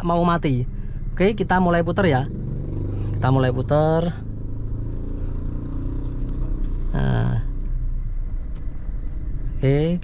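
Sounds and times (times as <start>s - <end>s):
car engine low hum: 0.0s - 10.0s.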